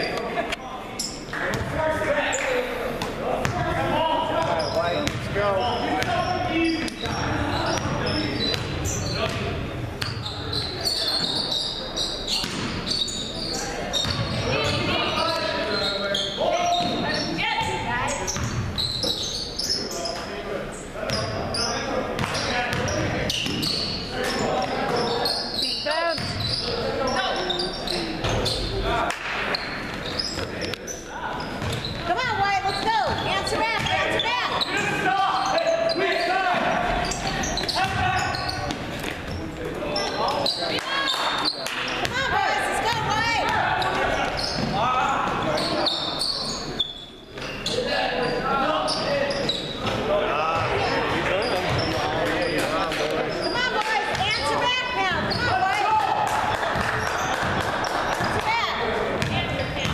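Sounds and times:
voices calling out: 0.0s - 59.9s
basketball bouncing on hardwood floor: 5.0s - 5.4s, 59.2s - 59.9s.

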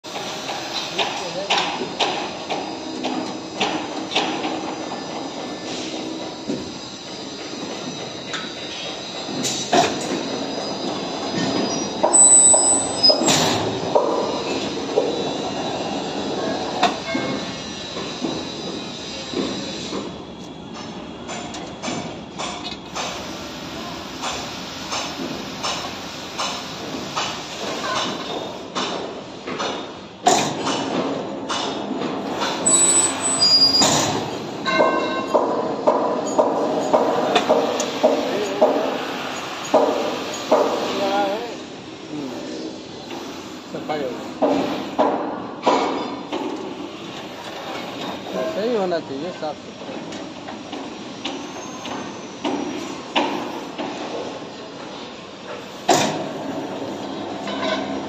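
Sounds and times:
high metal squeals: 5.8s - 13.4s, 32.6s - 34.0s.

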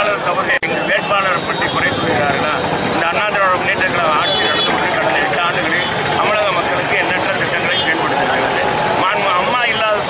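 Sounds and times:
man talking: 0.0s - 10.0s
outdoor background noise: 0.0s - 10.0s.

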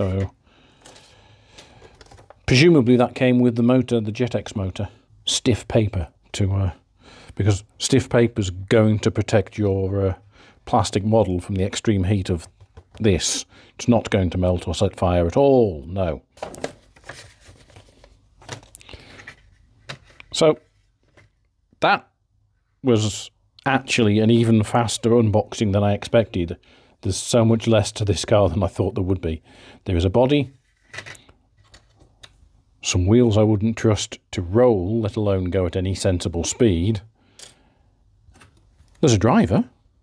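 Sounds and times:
paper rustling: 0.0s - 2.4s, 16.4s - 21.4s.

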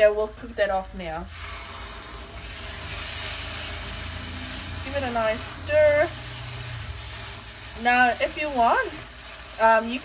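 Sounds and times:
paste sizzling in a wok: 0.0s - 10.0s.

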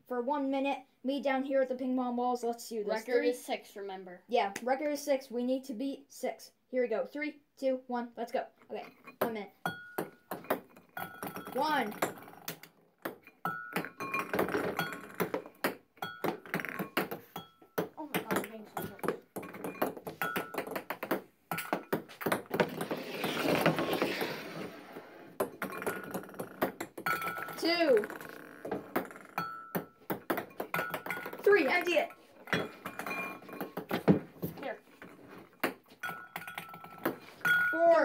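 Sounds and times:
ping-pong balls bouncing clicks: 9.1s - 23.0s, 25.3s - 38.0s.

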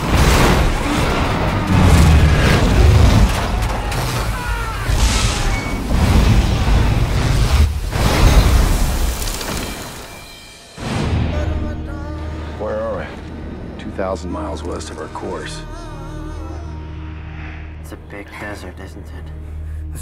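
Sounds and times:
heavy booms and rumbling impacts: 0.0s - 9.0s
music: 10.3s - 20.0s.

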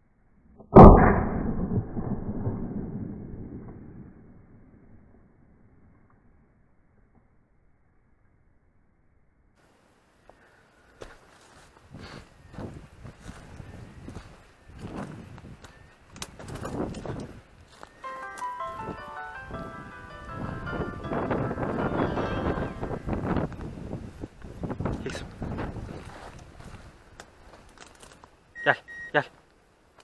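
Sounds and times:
footsteps through dry scrub: 11.0s - 15.8s, 25.8s - 28.3s.

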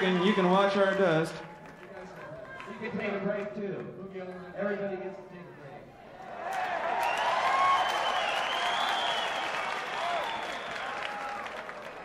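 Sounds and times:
audience applauding and cheering: 0.0s - 3.5s, 6.2s - 12.0s.

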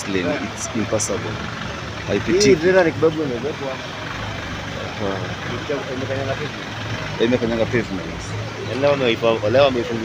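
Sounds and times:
road traffic rumble: 0.0s - 10.0s
voices talking: 0.0s - 10.0s.

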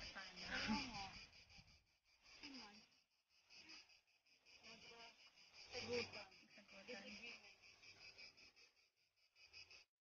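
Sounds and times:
faint distant voices: 0.0s - 9.2s
insects chirping: 0.0s - 10.0s.

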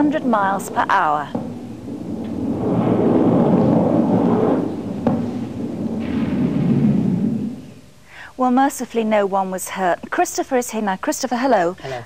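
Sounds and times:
jet roaring: 0.0s - 7.9s
sharp crack: 0.0s - 8.0s.

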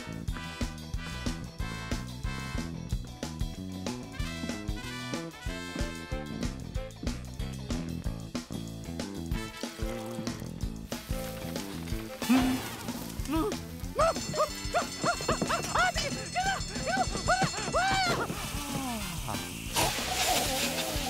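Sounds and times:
swing-style cartoon music: 0.0s - 21.0s
cartoon character yelping: 13.3s - 18.3s.

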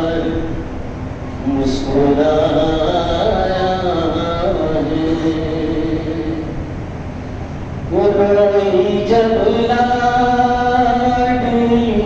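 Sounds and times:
man chanting into a microphone: 0.0s - 0.7s, 1.4s - 6.7s, 7.9s - 12.0s.

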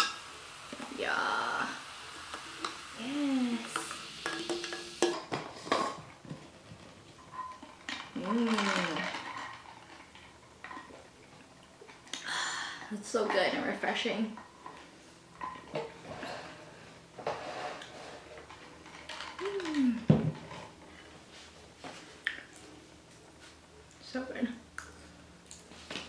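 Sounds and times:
soda fizzing: 0.0s - 5.2s
person humming: 19.4s - 20.1s.

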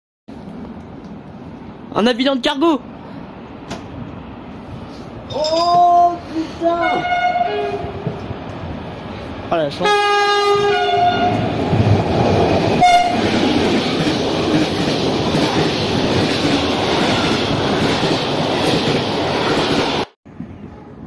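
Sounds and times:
train wagons rumbling and clattering: 0.3s - 21.0s
train horn blasts: 6.8s - 8.1s, 9.8s - 11.4s, 12.8s - 13.2s.

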